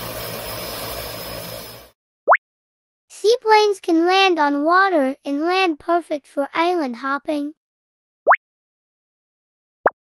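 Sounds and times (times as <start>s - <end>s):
propeller plane engine running: 0.0s - 2.0s.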